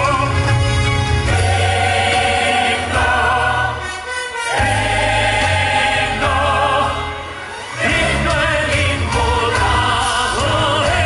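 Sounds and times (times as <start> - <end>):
band accompaniment: 0.0 - 11.0
choir singing a hymn: 1.3 - 11.0.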